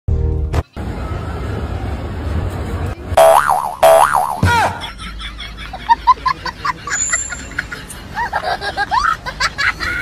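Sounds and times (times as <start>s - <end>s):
cartoon boing sound effect: 3.2s - 4.8s.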